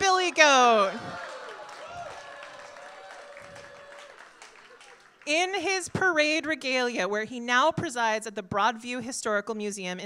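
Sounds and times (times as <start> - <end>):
crowd noise: 0.0 - 5.8
light scattered clapping: 1.0 - 5.3.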